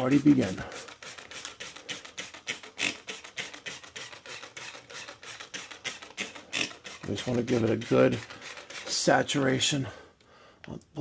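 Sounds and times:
spray bottle squirts: 0:00.5 - 0:09.0.

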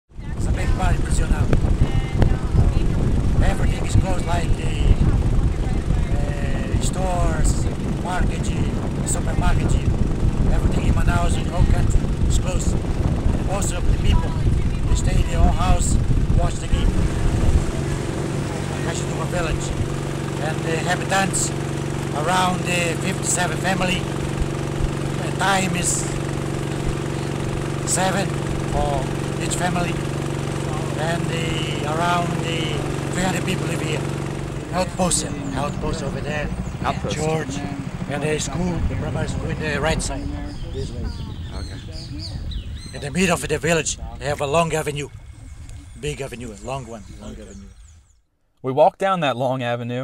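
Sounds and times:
wind on microphone: 0:00.1 - 0:20.4, 0:23.8 - 0:48.1
motorboat engine rumble: 0:00.1 - 0:48.4
man talking: 0:00.4 - 0:01.6, 0:03.2 - 0:05.1, 0:06.1 - 0:12.8, 0:13.4 - 0:17.2, 0:18.5 - 0:24.2, 0:25.1 - 0:26.3, 0:27.8 - 0:34.1, 0:34.7 - 0:41.9, 0:43.0 - 0:45.1, 0:46.0 - 0:47.7, 0:48.6 - 0:50.0.

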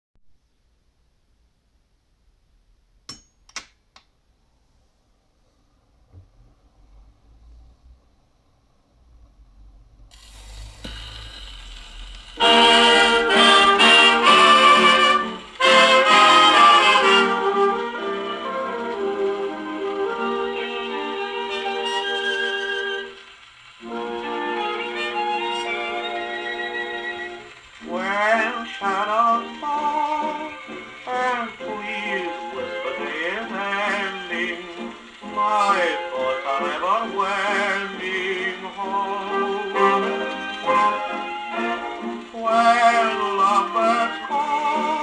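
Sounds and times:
record surface hiss: 0:00.3 - 0:45.0
dance band music on gramophone: 0:10.1 - 0:45.0.

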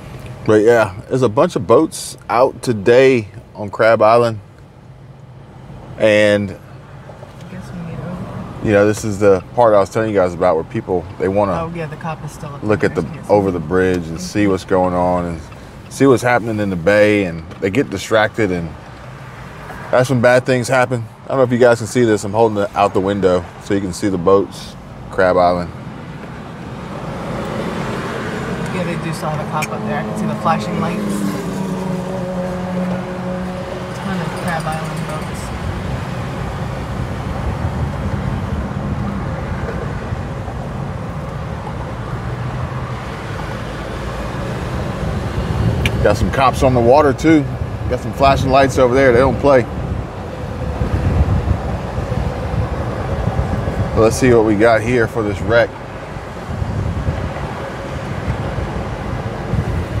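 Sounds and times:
car engine and road noise: 0:00.0 - 1:00.0
low tyre rumble: 0:00.0 - 1:00.0
wind: 0:00.0 - 1:00.0.

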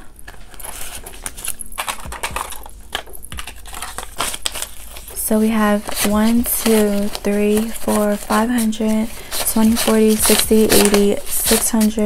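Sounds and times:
banknotes rustling: 0:00.0 - 0:12.0.

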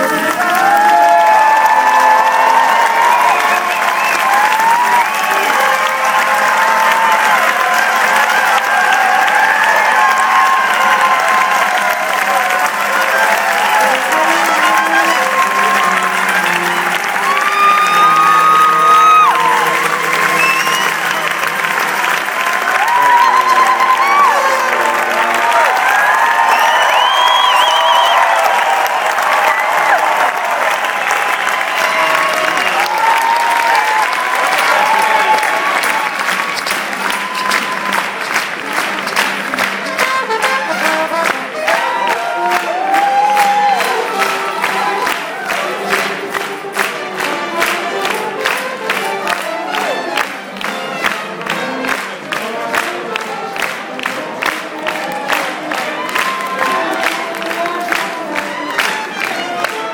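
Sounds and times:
audience applauding and cheering: 0:00.0 - 0:59.9
brass instruments playing: 0:00.0 - 0:59.9.

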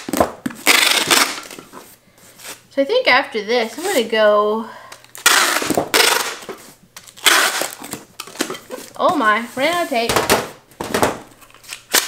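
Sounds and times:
tape dispenser clicks: 0:00.6 - 0:01.6, 0:05.1 - 0:08.4, 0:11.6 - 0:12.0
packing tape rasping off dispenser: 0:00.6 - 0:01.7, 0:05.0 - 0:08.9, 0:11.4 - 0:12.0.

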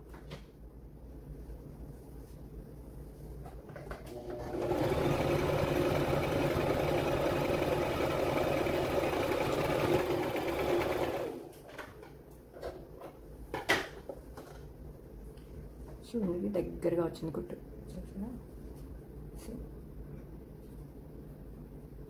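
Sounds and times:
electric sewing machine running: 0:04.1 - 0:11.6.

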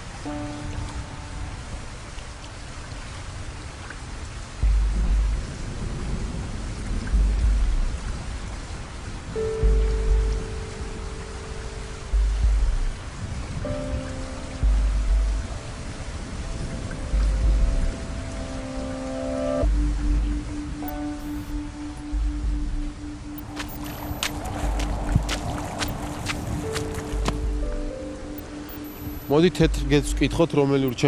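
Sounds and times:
rain hiss: 0:00.0 - 0:31.0
held music chords: 0:04.5 - 0:31.0
deep bass hits: 0:04.6 - 0:08.6, 0:09.6 - 0:10.6, 0:12.0 - 0:13.6, 0:14.6 - 0:15.6, 0:17.1 - 0:18.1, 0:19.6 - 0:28.0.

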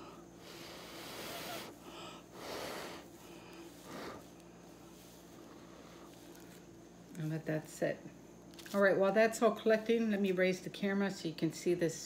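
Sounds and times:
breath puffs: 0:00.0 - 0:06.7.

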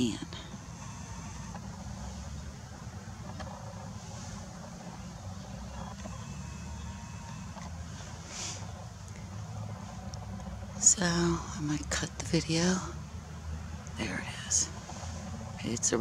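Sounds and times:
steady low rumble: 0:00.0 - 0:16.0
short soft hiss: 0:08.2 - 0:08.8.

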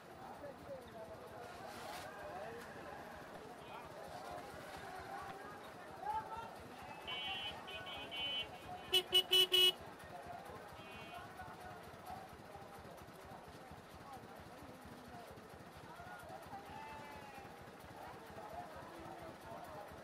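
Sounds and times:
chatter of people: 0:00.0 - 0:20.0
street traffic noise: 0:00.0 - 0:20.0
vehicle horn beeps: 0:07.0 - 0:09.8.

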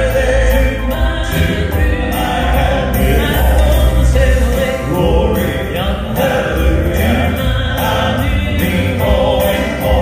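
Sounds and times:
men singing gospel through pa: 0:00.0 - 0:10.0.

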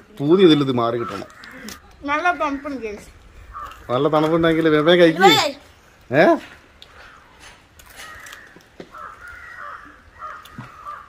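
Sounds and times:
crow cawing: 0:00.8 - 0:04.2, 0:06.9 - 0:11.0.

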